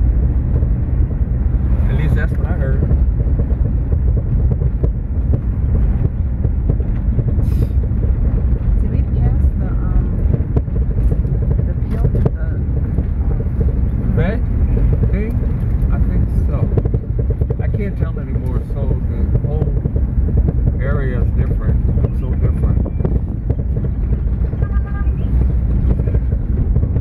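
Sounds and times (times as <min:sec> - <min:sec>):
car knocks and rattles: 0:00.0 - 0:27.0
tyres and engine rumble: 0:00.0 - 0:27.0.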